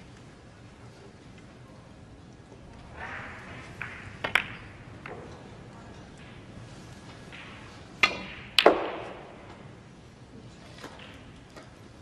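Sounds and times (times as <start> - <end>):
snooker balls clicking: 2.3 - 9.9, 10.5 - 12.0.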